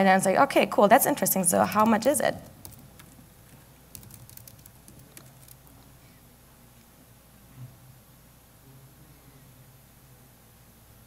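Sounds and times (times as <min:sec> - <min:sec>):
laptop keyboard typing: 0:01.6 - 0:05.9.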